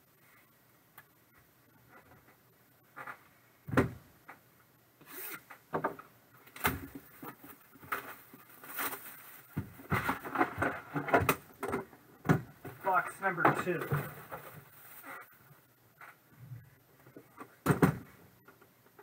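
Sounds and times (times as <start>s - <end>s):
clatter of boxes handled: 6.6s - 14.9s.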